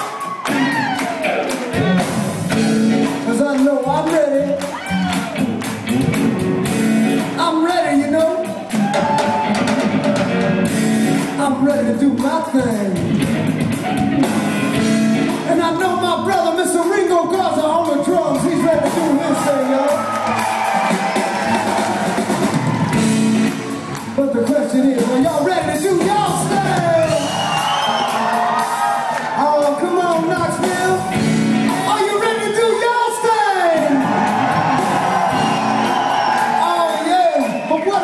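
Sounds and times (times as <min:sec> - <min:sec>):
audience whooping: 0:00.0 - 0:03.1, 0:04.4 - 0:05.7, 0:08.5 - 0:10.7, 0:18.8 - 0:25.1, 0:26.4 - 0:30.2, 0:32.0 - 0:38.0
electric guitar: 0:00.0 - 0:16.3, 0:30.1 - 0:32.0
bass guitar: 0:00.0 - 0:38.0
drums: 0:00.0 - 0:38.0
live rock band playing: 0:00.0 - 0:38.0.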